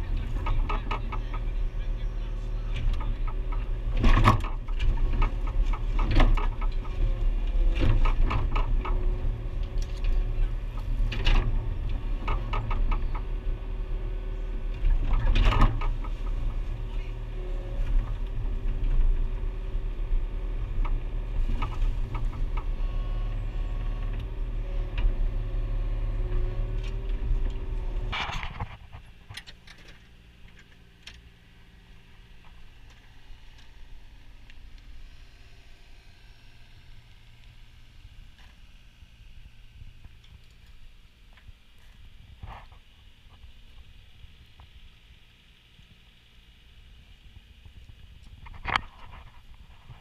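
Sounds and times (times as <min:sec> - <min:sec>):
diesel engine running: 0:00.0 - 0:50.0.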